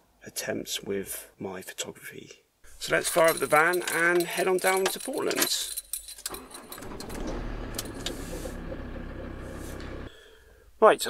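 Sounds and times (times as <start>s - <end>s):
engine starting and idling: 6.3s - 10.4s.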